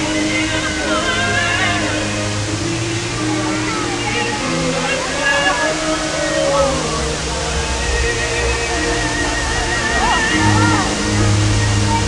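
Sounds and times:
fountain water splashing: 0.0 - 12.0
song over loudspeakers: 0.0 - 12.0.

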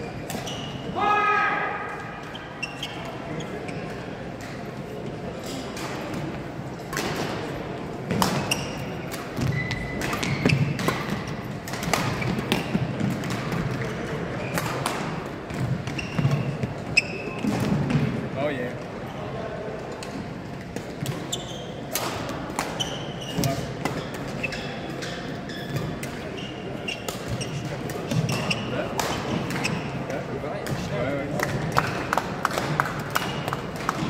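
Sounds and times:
sneaker squeaks: 0.0 - 0.9, 2.0 - 4.2, 8.2 - 12.9, 13.7 - 14.8, 15.5 - 17.7, 21.0 - 30.1
background chatter: 12.8 - 34.0.

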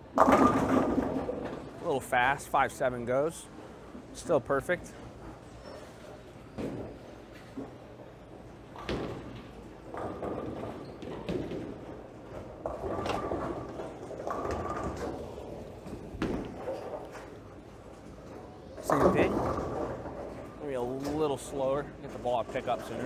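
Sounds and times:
bowling balls and pins thudding: 0.0 - 2.5, 4.8 - 23.0.

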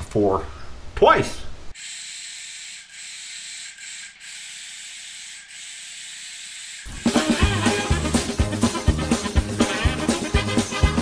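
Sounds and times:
spray gun hissing: 1.8 - 11.0
music with a beat: 6.9 - 11.0.

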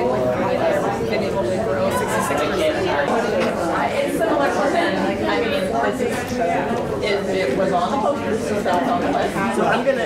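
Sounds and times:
babble of many voices: 0.0 - 10.0.

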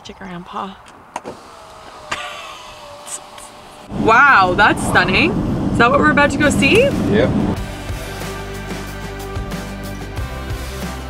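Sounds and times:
power window motor whine: 1.2 - 7.0.

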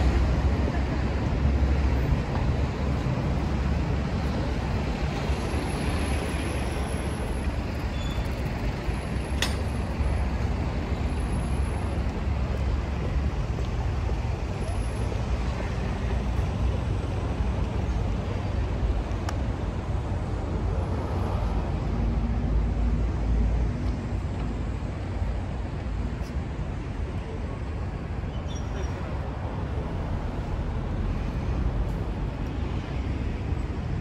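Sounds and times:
city traffic rumble: 0.0 - 34.0.

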